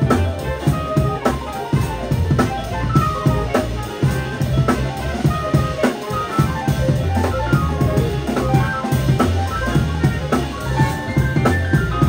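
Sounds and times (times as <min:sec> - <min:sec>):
drum kit: 0:00.0 - 0:12.0
trumpet: 0:00.0 - 0:12.0
upright bass: 0:00.0 - 0:12.0.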